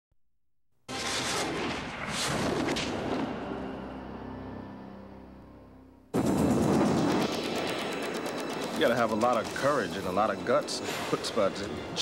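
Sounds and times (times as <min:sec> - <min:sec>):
loud crash-like boom: 0:01.0 - 0:03.3
rapid gunfire-like hits: 0:06.1 - 0:11.1.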